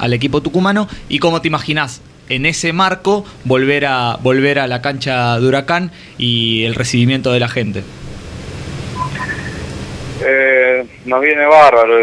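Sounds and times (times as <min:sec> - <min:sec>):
broadcast line hiss and hum: 0:00.0 - 0:12.0
faint short beeps: 0:09.0 - 0:09.7.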